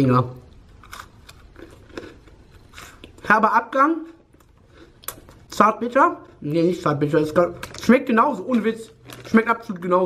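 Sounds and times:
person chewing crunchy biscuit: 0.5 - 3.3, 4.1 - 6.7.

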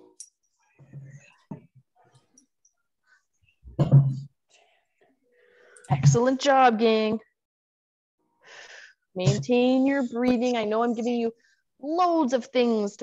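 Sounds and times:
person breathing softly: 8.4 - 9.1.

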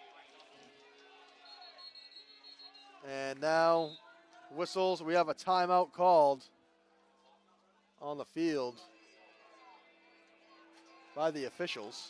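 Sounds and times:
distant stadium crowd: 0.0 - 12.0
referee's whistle: 1.3 - 4.2.

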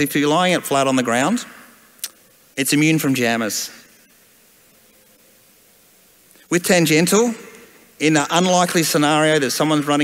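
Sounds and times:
faint steady background hiss: 0.0 - 10.0.

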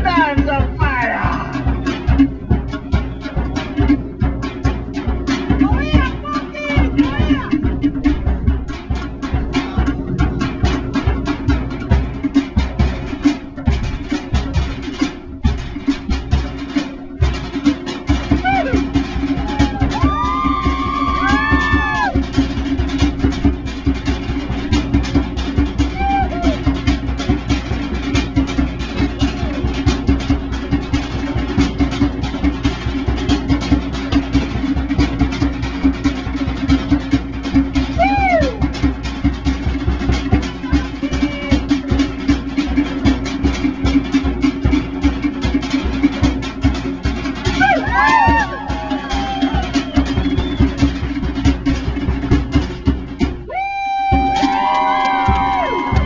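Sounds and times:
fast drum-led music: 0.0 - 56.0
high whooping calls: 18.2 - 22.2, 25.8 - 26.8, 37.9 - 38.8, 47.5 - 51.1, 53.5 - 56.0.

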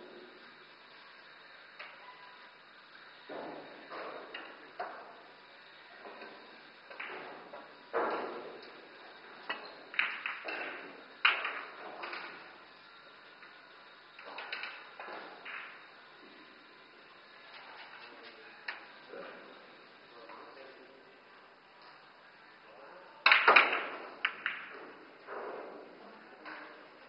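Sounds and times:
pool balls clicking: 6.0 - 13.5, 14.2 - 15.9, 23.2 - 27.0
pool cue striking ball: 23.3 - 25.8.

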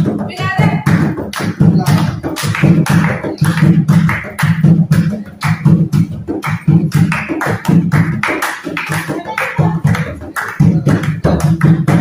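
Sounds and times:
hand drum playing: 0.0 - 12.0
hand claps: 0.7 - 12.0.

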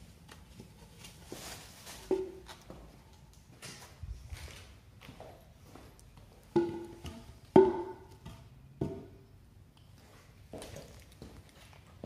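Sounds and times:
wooden timbers knocking on concrete: 6.5 - 9.2.

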